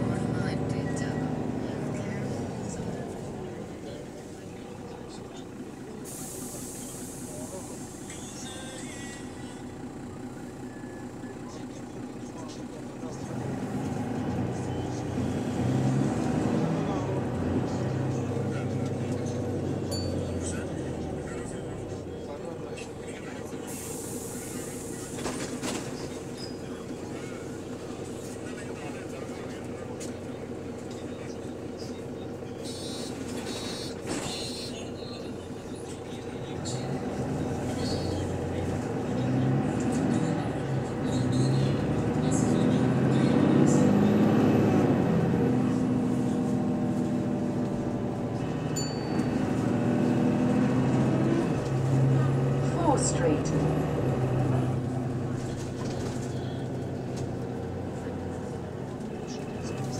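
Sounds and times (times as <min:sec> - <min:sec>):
bus interior rumble and hum: 0:00.0 - 0:59.9
passengers chattering: 0:00.0 - 0:59.9.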